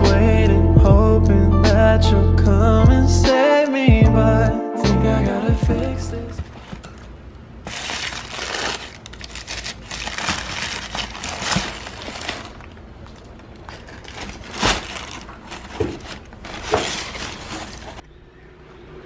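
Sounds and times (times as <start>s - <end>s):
tissue paper rustling and crinkling: 7.6s - 18.0s.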